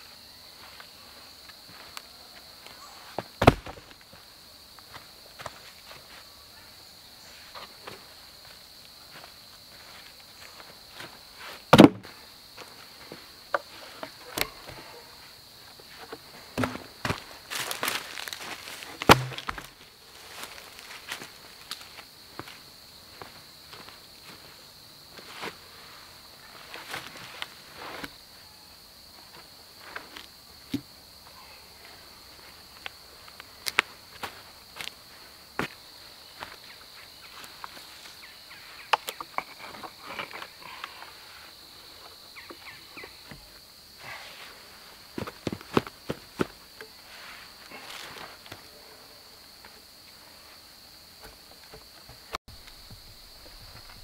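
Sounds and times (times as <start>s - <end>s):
footsteps crunching on dry leaves: 16.6s - 24.5s
twigs snapping: 17.5s - 19.7s.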